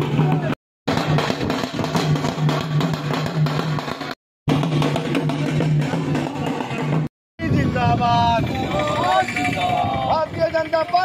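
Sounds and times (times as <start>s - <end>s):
barrel drums and side drum beat: 0.0s - 7.1s.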